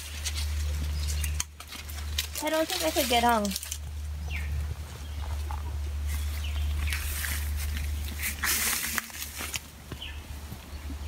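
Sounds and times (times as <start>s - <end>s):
rustling and scraping on tree trunk: 0.0s - 10.7s
steady low rumble: 0.0s - 11.0s.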